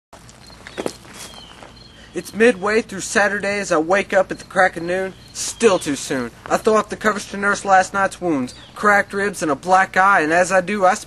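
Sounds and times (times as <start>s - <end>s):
faint background noise: 0.2s - 11.0s.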